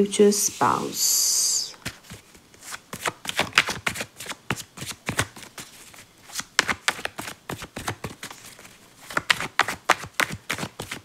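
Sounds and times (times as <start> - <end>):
cards shuffling: 1.7 - 11.0.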